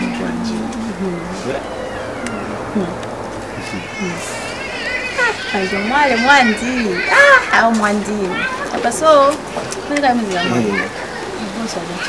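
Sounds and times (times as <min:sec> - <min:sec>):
wordless vocal glides: 0:00.0 - 0:04.5.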